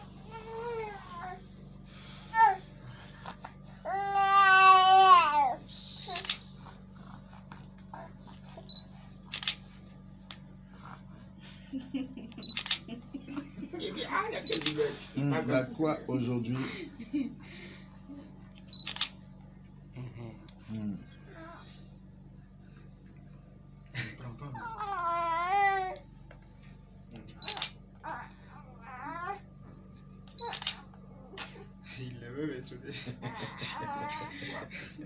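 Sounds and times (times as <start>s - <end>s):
steady low hum: 0.0s - 35.0s
baby whimpering: 24.6s - 26.0s.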